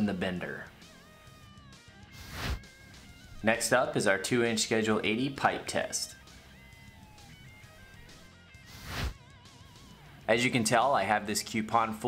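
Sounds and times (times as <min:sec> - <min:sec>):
whoosh: 0:02.2 - 0:02.6, 0:08.7 - 0:09.2.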